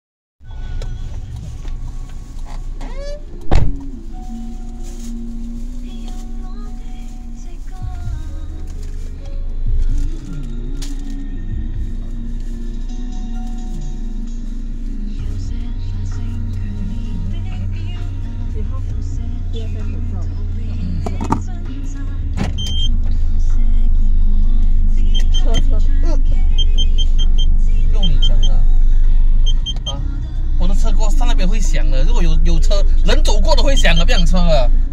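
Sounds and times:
music playing: 0:00.4 - 0:34.9
car idling: 0:00.5 - 0:34.9.

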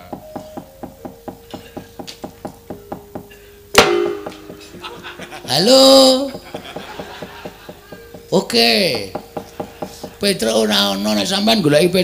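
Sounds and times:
held musical note: 0:00.0 - 0:06.8
wooden knocking rhythm: 0:00.0 - 0:11.4
loud ringing strike: 0:02.9 - 0:06.4.

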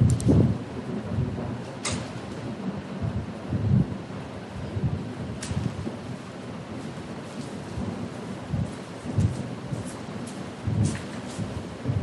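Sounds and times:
low rumbles: 0:00.0 - 0:06.9
room hiss: 0:00.0 - 0:12.0.

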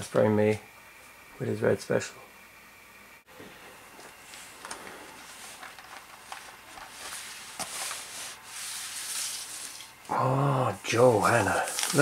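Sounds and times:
paper and cardboard rustling: 0:04.4 - 0:10.0, 0:11.0 - 0:12.0.

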